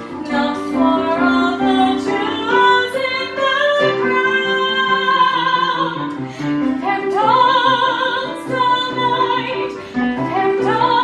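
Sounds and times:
electronic keyboard notes: 0:00.0 - 0:11.0
woman singing with vibrato: 0:00.0 - 0:11.0.

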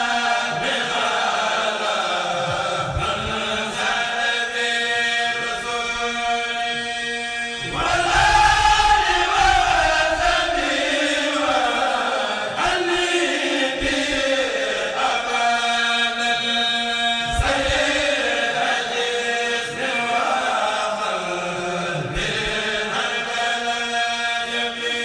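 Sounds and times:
choir chanting in unison: 0:00.0 - 0:25.0.

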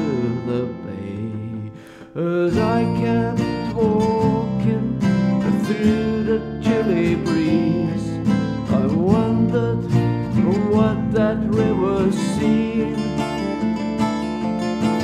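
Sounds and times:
acoustic blues guitars: 0:00.0 - 0:15.0
guitar strumming chords: 0:00.0 - 0:15.0.

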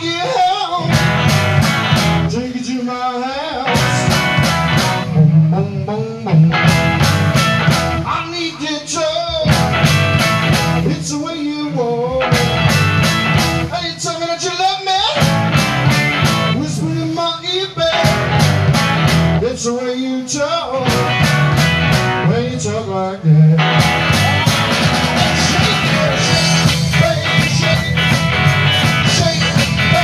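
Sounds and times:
man singing: 0:00.0 - 0:01.3, 0:02.2 - 0:07.0, 0:07.9 - 0:09.9, 0:10.7 - 0:12.8, 0:13.6 - 0:15.3, 0:16.4 - 0:18.4, 0:19.3 - 0:30.0
blues-rock band playing: 0:00.0 - 0:30.0.

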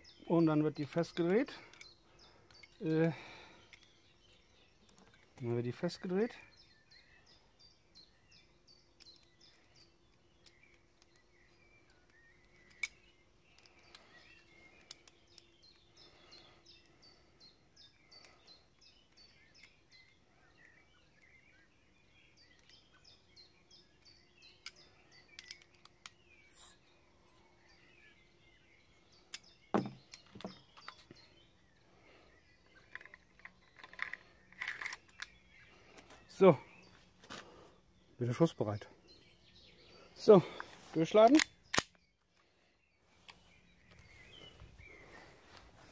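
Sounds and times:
songbirds chirping: 0:00.0 - 0:45.9.

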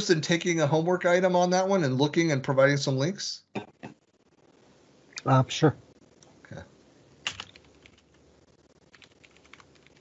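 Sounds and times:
computer keyboard typing: 0:07.2 - 0:08.2, 0:08.8 - 0:10.0.

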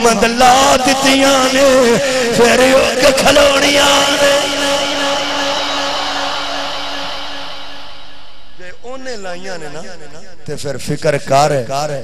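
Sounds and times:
man speaking over loudspeaker: 0:00.0 - 0:06.6, 0:08.5 - 0:12.0.

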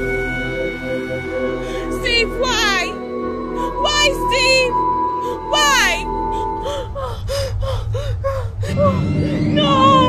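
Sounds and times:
low background drone: 0:00.0 - 0:10.0.

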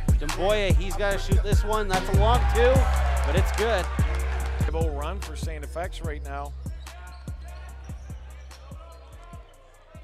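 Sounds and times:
music with deep bass line: 0:00.0 - 0:10.0.

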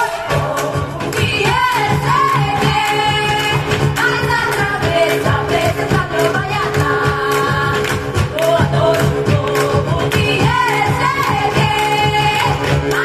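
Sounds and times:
vocal ensemble singing: 0:00.0 - 0:13.0.

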